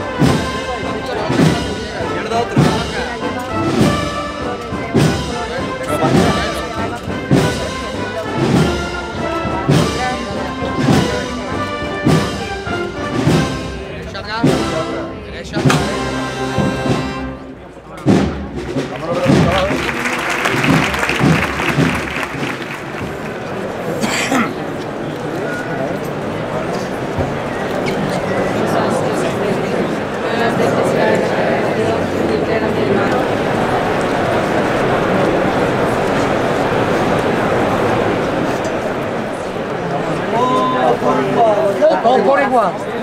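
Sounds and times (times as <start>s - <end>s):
steady drum beat: 0.0s - 23.4s
brass band playing a march: 0.0s - 24.0s
noisy wash of sound: 29.4s - 40.6s.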